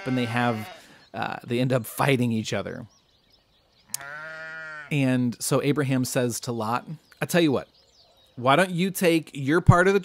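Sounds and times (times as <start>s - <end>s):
sheep bleat: 0.0s - 0.9s, 3.9s - 5.0s.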